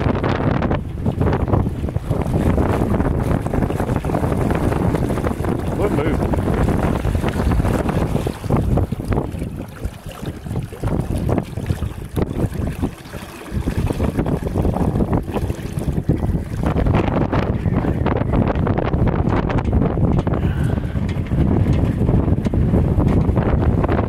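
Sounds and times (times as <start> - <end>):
water splashing along hull: 0.0 - 24.0
wind buffeting microphone: 0.0 - 24.0.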